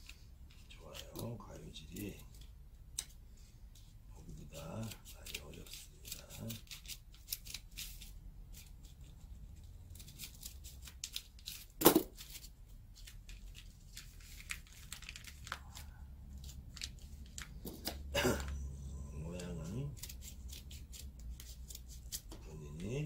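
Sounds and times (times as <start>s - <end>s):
scissors snipping paper: 19.3s - 23.0s.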